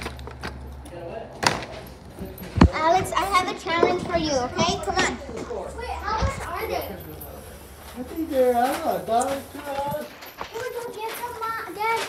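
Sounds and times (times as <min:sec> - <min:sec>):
children talking and calling out: 0:02.6 - 0:08.2, 0:09.2 - 0:12.0.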